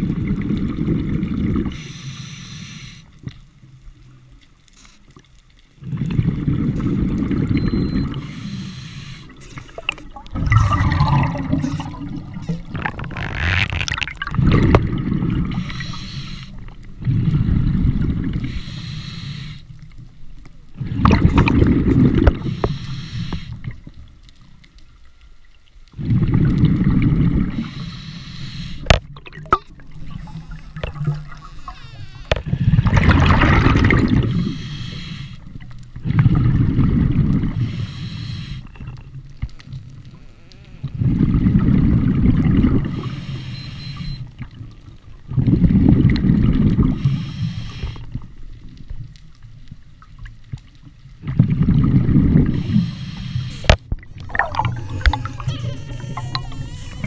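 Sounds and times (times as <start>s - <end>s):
hissing regulator breaths: 1.7s - 3.2s, 8.1s - 10.0s, 15.5s - 16.6s, 18.4s - 19.8s, 22.4s - 23.6s, 27.5s - 28.9s, 34.1s - 35.5s, 37.5s - 38.8s, 42.9s - 44.3s, 47.0s - 48.2s, 52.5s - 53.8s
exhaled bubbles rushing: 5.8s - 8.2s, 9.3s - 15.9s, 17.0s - 18.5s, 20.8s - 22.5s, 26.0s - 27.7s, 32.5s - 34.5s, 36.0s - 37.6s, 41.0s - 43.1s, 44.8s - 47.1s, 51.2s - 52.7s, 53.9s - 56.6s.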